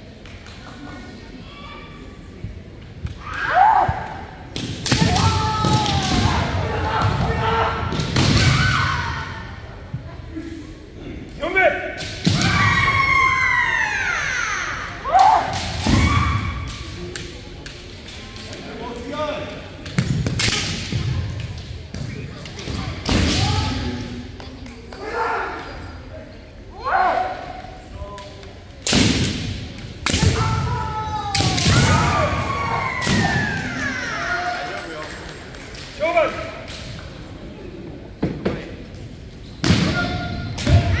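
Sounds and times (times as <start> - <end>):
people shouting: 4.9 - 9.5, 30.1 - 34.6.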